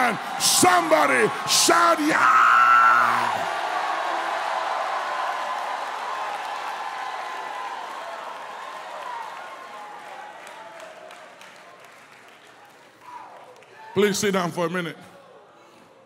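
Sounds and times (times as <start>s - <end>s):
crowd cheering and applauding: 0.0s - 14.1s.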